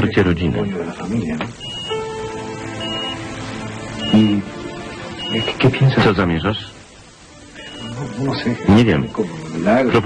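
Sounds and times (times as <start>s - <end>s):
soft sustained background music: 0.0s - 10.0s.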